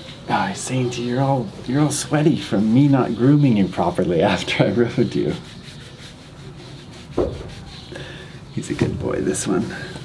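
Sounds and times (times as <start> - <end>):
hand rubbing horse hair: 0.0 - 10.0.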